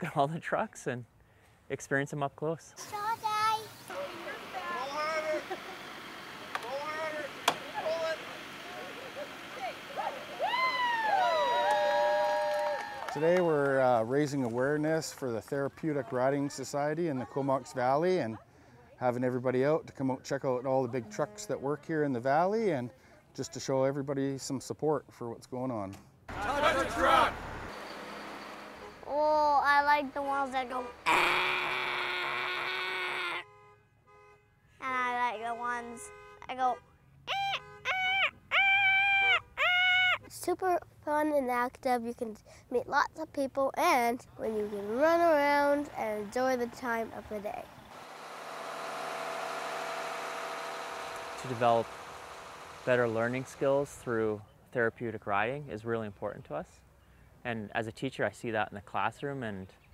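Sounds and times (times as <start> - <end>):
tow truck boom squealing: 26.3 - 29.2, 47.9 - 53.5
boy imitating truck horn: 29.0 - 40.4.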